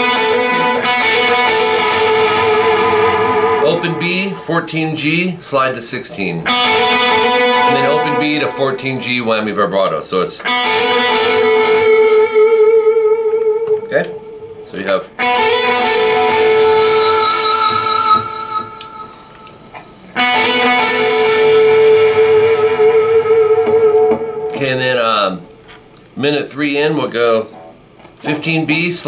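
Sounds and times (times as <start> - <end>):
distorted electric guitar: 0.0 - 25.9.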